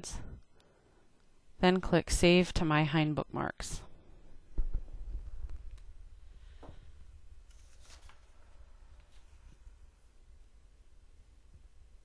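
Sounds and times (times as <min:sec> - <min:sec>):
low steady hum: 0:00.0 - 0:12.0
faint rustle: 0:06.3 - 0:09.8.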